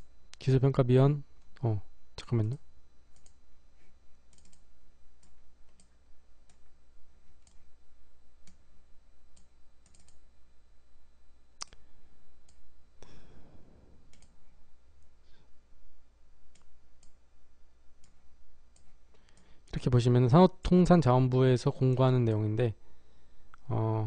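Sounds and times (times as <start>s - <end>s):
computer mouse clicks: 3.1s - 3.4s, 4.3s - 4.6s, 9.3s - 10.2s, 14.1s - 14.4s, 16.5s - 17.2s.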